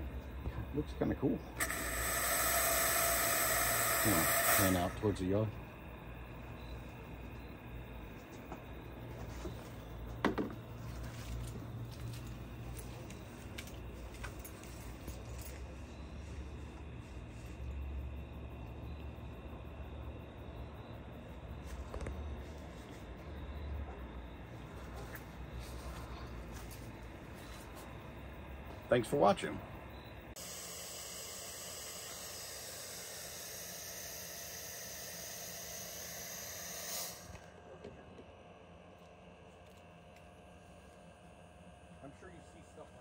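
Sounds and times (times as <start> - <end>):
air blower humming: 1.5 - 5.7, 30.4 - 38.7.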